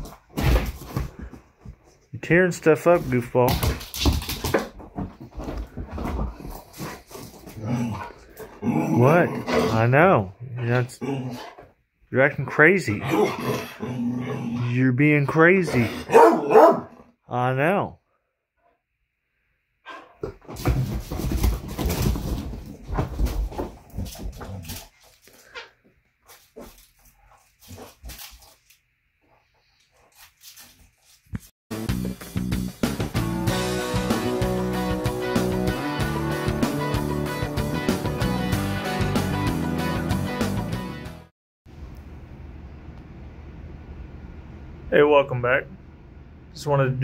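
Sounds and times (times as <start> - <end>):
dog jumping on couch: 20.2 - 24.8.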